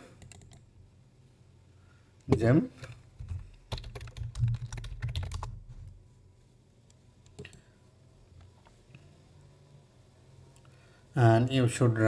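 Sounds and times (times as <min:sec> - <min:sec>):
computer keyboard typing: 0:00.2 - 0:00.6, 0:02.8 - 0:05.7.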